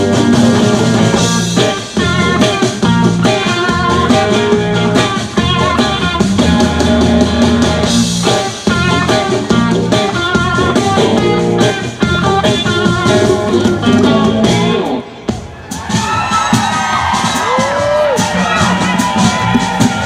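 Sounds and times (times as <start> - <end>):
electric guitars: 0.0 - 15.4
drum kit: 0.0 - 20.0.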